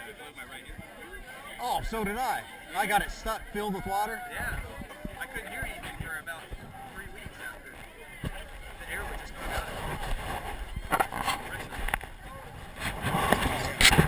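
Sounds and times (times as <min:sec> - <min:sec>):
people talking: 0:00.0 - 0:14.0.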